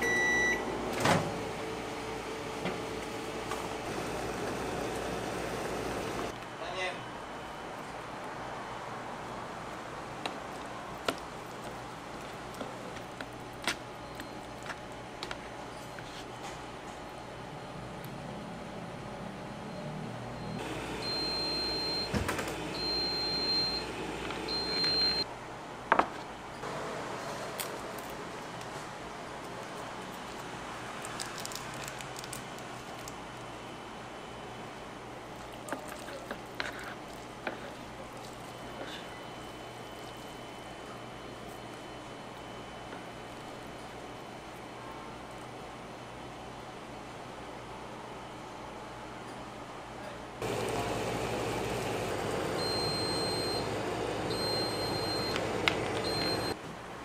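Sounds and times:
ramen cooker running: 0.6s - 6.3s, 50.4s - 56.6s.

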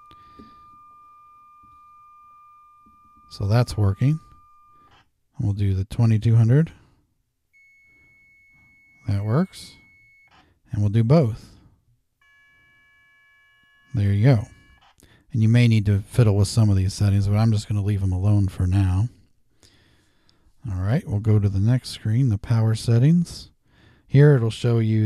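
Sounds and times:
steady test tone through radio speaker: 0.0s - 5.0s, 7.6s - 10.3s, 12.6s - 14.8s.

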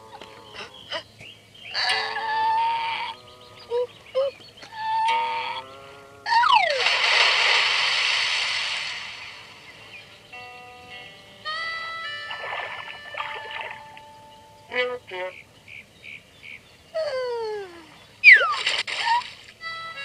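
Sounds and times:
pitched musical tones: 9.7s - 15.3s.

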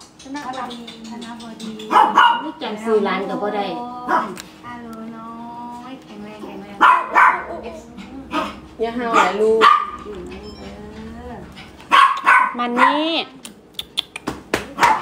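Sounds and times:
dog barking: 1.9s - 2.6s, 4.1s - 4.4s, 6.8s - 7.7s, 8.3s - 10.1s, 11.9s - 13.2s, 14.8s - 15.0s.

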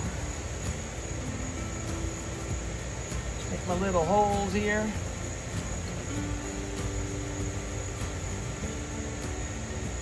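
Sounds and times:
fan running: 0.0s - 10.0s
high insect drone: 0.0s - 10.0s.

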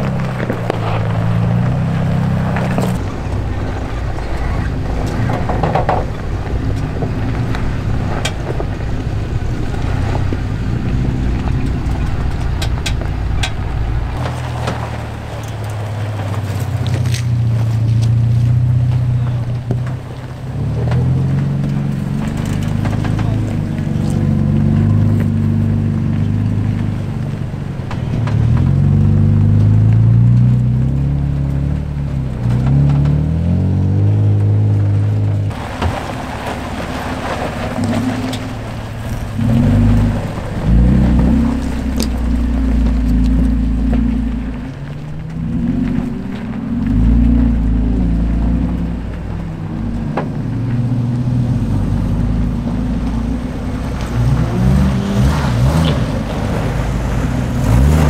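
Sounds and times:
rocks knocking: 0.0s - 58.0s
truck engines revving: 0.0s - 58.0s.

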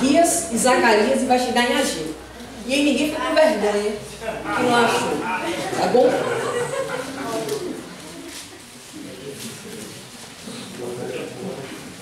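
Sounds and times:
faint voices: 3.4s - 12.0s.

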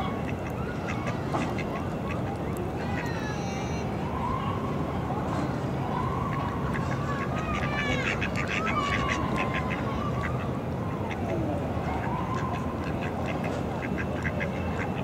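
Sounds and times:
low background noise: 0.0s - 15.0s
ducks quacking: 6.7s - 10.4s, 12.3s - 15.0s.

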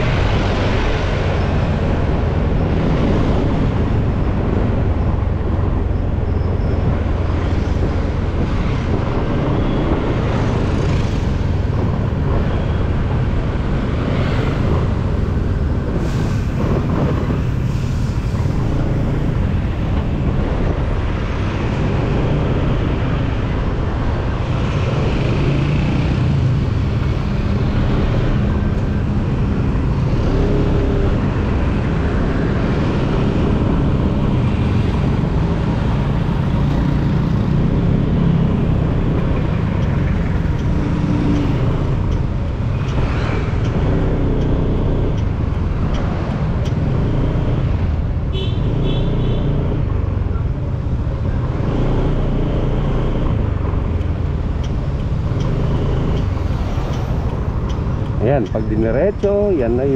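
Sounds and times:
road and wind noise: 0.0s - 59.9s.

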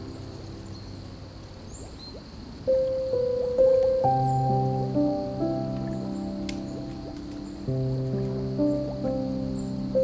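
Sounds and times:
flowing water: 0.0s - 10.0s
slow piano music: 0.0s - 10.0s.

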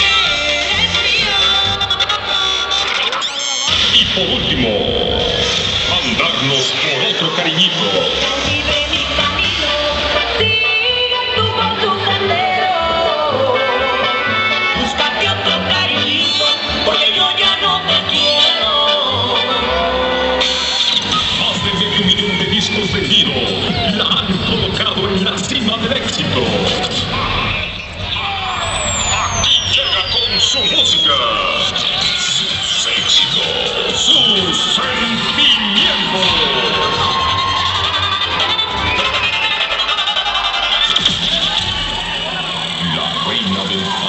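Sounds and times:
band music over concert pa: 0.0s - 44.0s
steady low bass: 3.7s - 6.8s, 21.0s - 38.0s
band music with melody: 7.8s - 21.7s.

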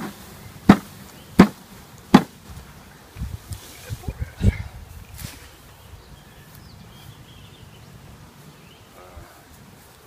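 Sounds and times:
sharp knocks on tree branch: 0.7s - 2.4s.

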